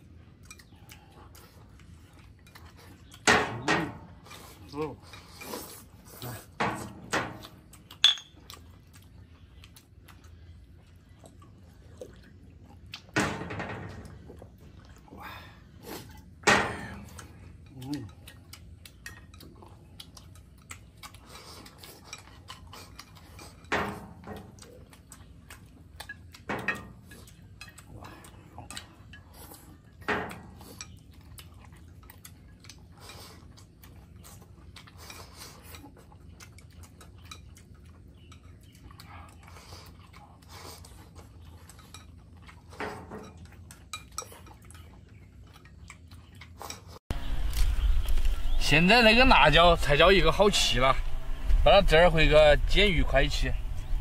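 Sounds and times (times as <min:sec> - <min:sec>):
clinks of tableware: 0:08.0 - 0:08.4.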